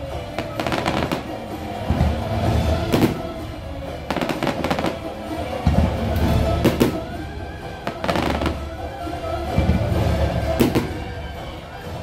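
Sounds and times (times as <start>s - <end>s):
fireworks bangs and crackles: 0.0s - 11.3s
show music: 0.0s - 12.0s.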